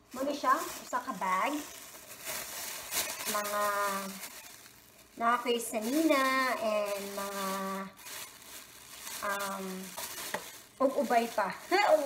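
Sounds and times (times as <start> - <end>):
woman speaking: 0.0 - 1.7, 3.2 - 4.2, 5.2 - 8.0, 9.2 - 10.0, 10.8 - 12.0
plastic bag rustling: 0.0 - 12.0.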